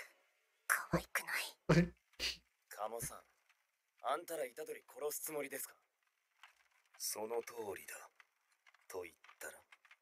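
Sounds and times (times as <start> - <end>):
person speaking: 1.7 - 3.2.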